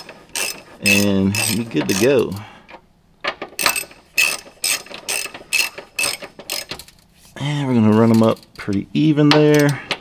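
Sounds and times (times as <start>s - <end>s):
hand ratchet clicking: 0.0s - 2.4s, 3.6s - 7.0s.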